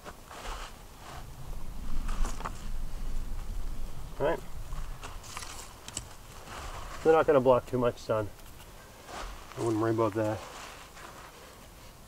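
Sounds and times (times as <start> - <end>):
dry sticks rustling and knocking: 0.0 - 11.8
low rumble: 1.0 - 8.4.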